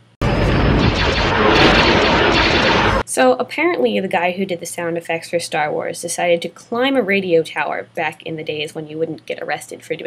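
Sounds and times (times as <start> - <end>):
explosions: 0.2 - 3.0
laser blasts: 0.2 - 3.0.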